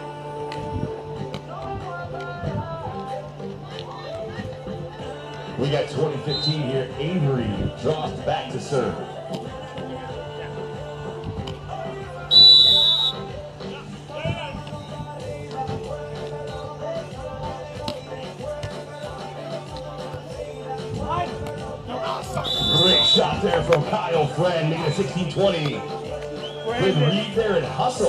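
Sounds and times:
background music: 0:00.0 - 0:28.0
referee's whistle blowing: 0:06.1 - 0:06.9, 0:12.2 - 0:13.4, 0:22.3 - 0:23.5, 0:26.4 - 0:27.5.

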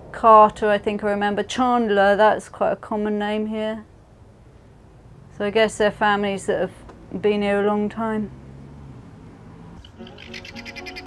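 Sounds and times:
guineafowl rattling call: 0:09.8 - 0:11.0.

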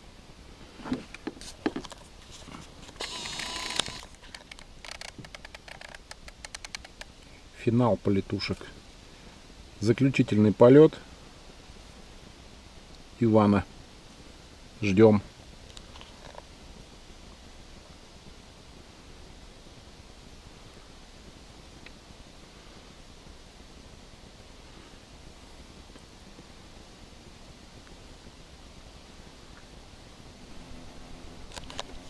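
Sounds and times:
faint steady low hum: 0:00.0 - 0:32.0
small sharp clicks: 0:02.9 - 0:07.2.

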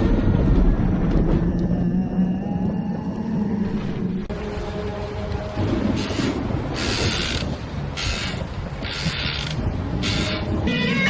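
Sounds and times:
low rumbling drone: 0:00.0 - 0:07.7.

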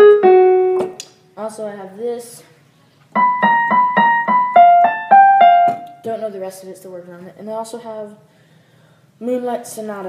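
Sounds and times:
piano melody note by note: 0:00.0 - 0:01.0, 0:03.2 - 0:06.0.

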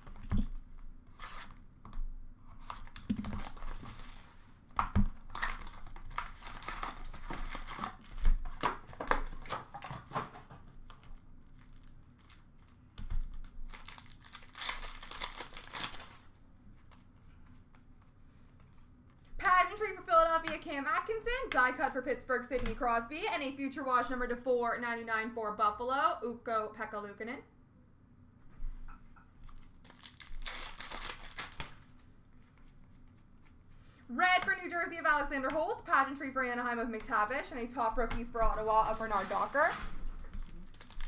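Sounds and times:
card packs being torn open: 0:02.6 - 0:04.2, 0:05.1 - 0:10.0, 0:11.1 - 0:16.3, 0:29.5 - 0:32.0, 0:40.3 - 0:41.0.

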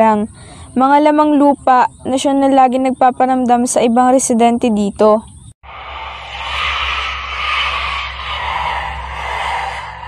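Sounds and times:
low constant hum: 0:05.7 - 0:10.0
rushing hissing noise: 0:05.7 - 0:10.0.

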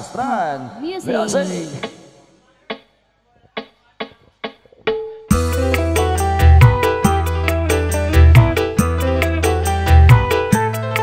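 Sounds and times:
sharp percussive taps: 0:02.7 - 0:05.3.

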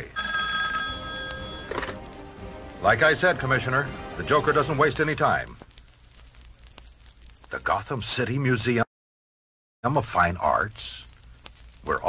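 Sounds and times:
telephone ringing: 0:00.0 - 0:02.0.

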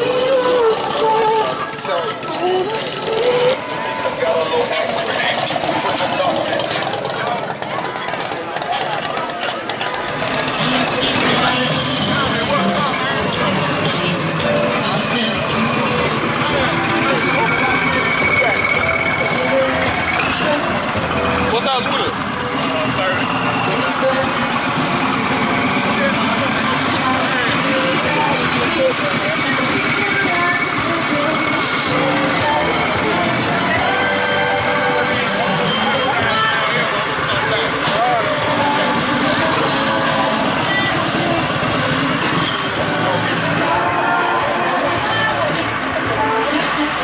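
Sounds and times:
crowd voices: 0:00.0 - 0:47.0
motorcycle engine running: 0:00.0 - 0:47.0.

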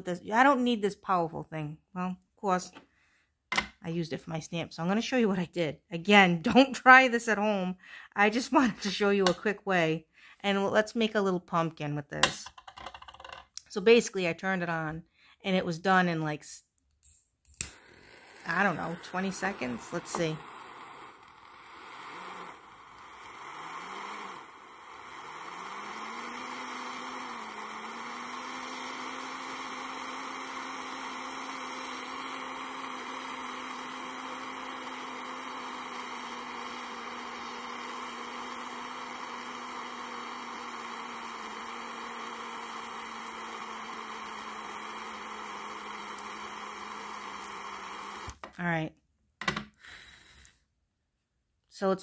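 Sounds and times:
handheld torch hissing and humming: 0:17.1 - 0:48.4.

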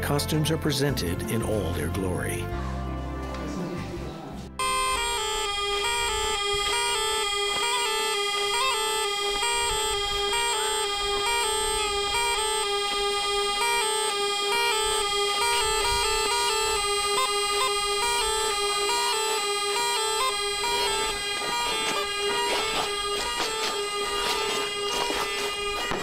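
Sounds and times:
bagpipe playing folk-dance tune: 0:04.6 - 0:26.0.

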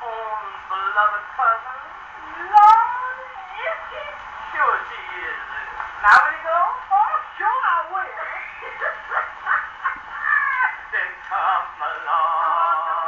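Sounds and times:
comic dialogue on gramophone record: 0:00.0 - 0:13.0.

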